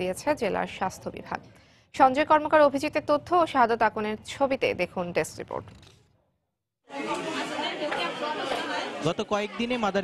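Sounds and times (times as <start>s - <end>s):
babble of overlapping voices: 6.9s - 10.0s.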